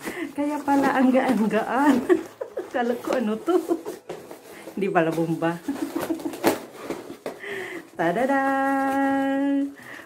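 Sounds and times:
cardboard rustling and scraping: 0.0s - 9.8s.

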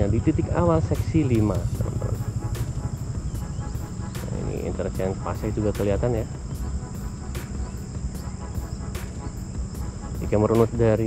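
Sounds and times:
crickets trilling: 0.0s - 11.0s
low steady rumble: 0.0s - 11.0s.

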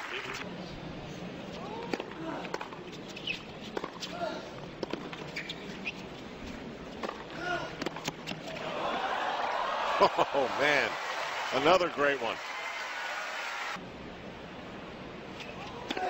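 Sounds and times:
tennis ball bouncing: 1.8s - 4.1s, 4.8s - 6.0s, 7.0s - 8.6s.

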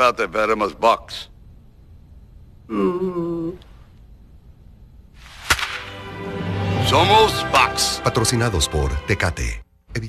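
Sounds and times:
sharp crack: 5.2s - 6.1s.

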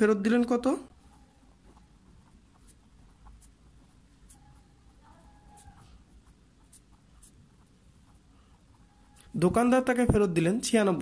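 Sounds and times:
pen scratching on paper: 0.9s - 9.8s.

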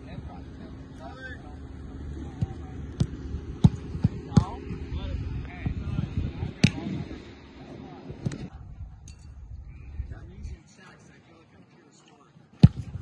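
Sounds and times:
footballs being kicked: 2.3s - 4.6s, 12.6s - 13.0s.

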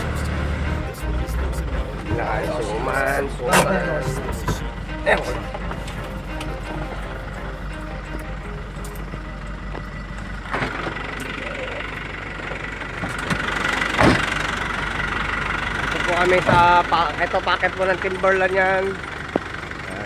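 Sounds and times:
vehicle engine running: 0.0s - 20.0s.

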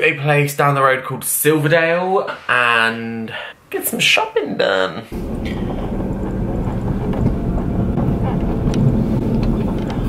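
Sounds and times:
car engine rumble from cabin: 5.1s - 10.0s.

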